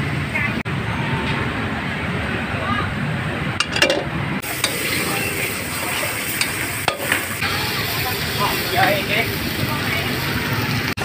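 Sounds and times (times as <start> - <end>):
metal spatula scraping wok: 3.6 - 7.5
meat sizzling in a wok: 4.4 - 11.0.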